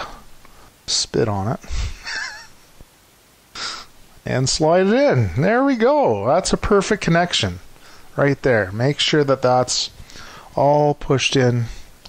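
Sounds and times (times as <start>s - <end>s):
rubbing hiss: 3.5s - 4.3s.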